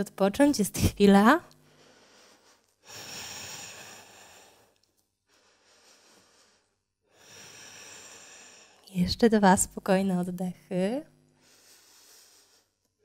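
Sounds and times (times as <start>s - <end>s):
woman breathing slowly: 1.6s - 8.9s, 11.4s - 13.0s.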